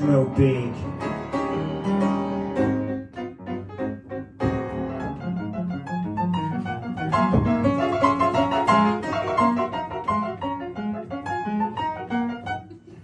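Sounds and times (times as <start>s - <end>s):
upright piano playing chords: 0.0s - 13.0s.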